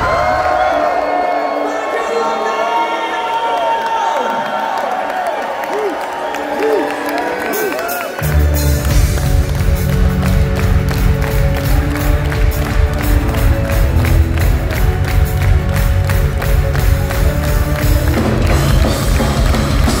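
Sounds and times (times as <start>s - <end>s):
metal band playing live: 8.2s - 20.0s.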